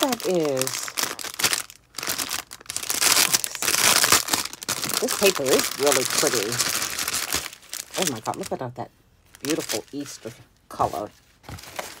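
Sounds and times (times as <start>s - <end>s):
cellophane bag crinkling: 0.0s - 8.6s, 9.3s - 10.3s.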